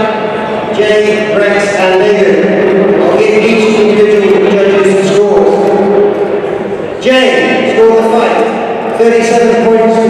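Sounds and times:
man announcing over pa: 0.0s - 6.2s, 7.0s - 10.0s.

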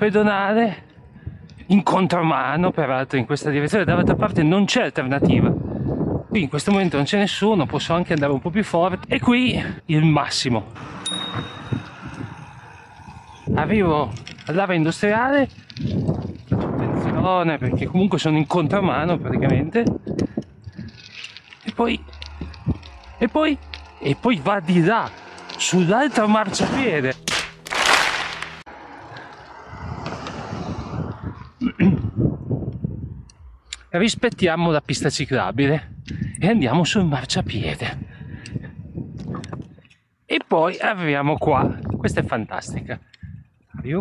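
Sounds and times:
car driving past: 10.7s - 13.5s, 21.8s - 31.6s
bright metallic ring: 11.0s - 11.9s
bicycle tyres hissing on asphalt: 11.8s - 16.5s, 20.5s - 25.7s
man's voice: 16.6s - 20.0s, 21.6s - 22.2s, 23.1s - 27.2s.

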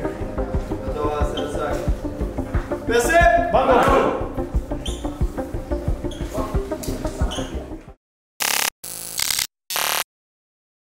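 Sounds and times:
background music: 0.0s - 8.0s
buzzy electronic sound effects: 8.4s - 10.0s.

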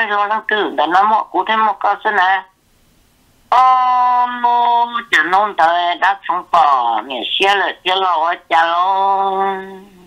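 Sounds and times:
singing voice holding long note: 3.5s - 5.5s, 8.1s - 10.0s.

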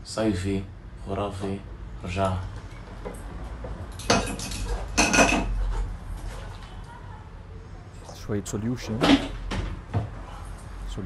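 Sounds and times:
glass and metal clattering: 3.9s - 5.6s.

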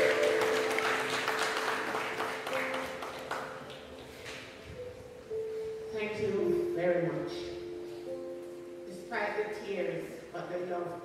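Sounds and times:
congregation applauding: 0.0s - 4.1s
sustained keyboard chord: 0.0s - 9.7s.

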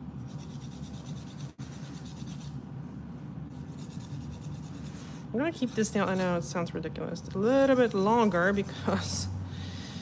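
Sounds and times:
steady low hum: 0.0s - 10.0s
nail file rasping on fingernail: 0.2s - 2.6s, 3.5s - 6.4s.

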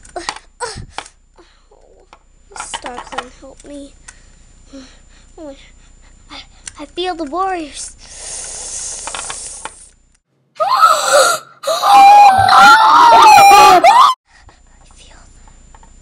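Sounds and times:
hiss: 8.0s - 9.9s.

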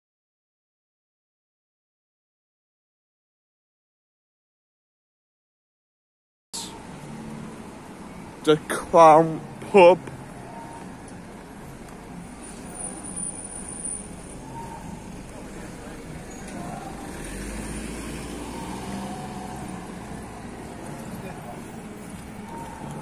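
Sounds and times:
faint voices of passers-by: 6.6s - 23.0s
low vehicle rumble: 6.6s - 23.0s
street traffic: 6.6s - 23.0s.

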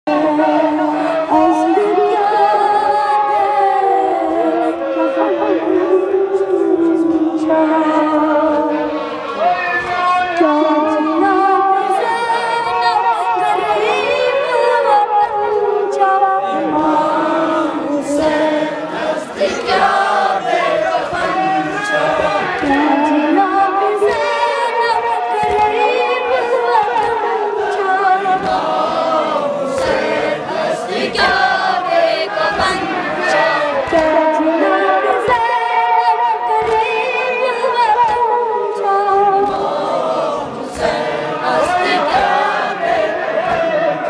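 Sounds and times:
voices chanting in chorus: 0.0s - 44.0s.

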